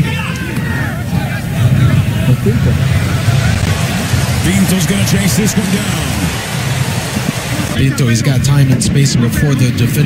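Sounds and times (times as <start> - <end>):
din of fans' voices: 0.0 - 10.0
faint crowd chanting: 0.7 - 7.8.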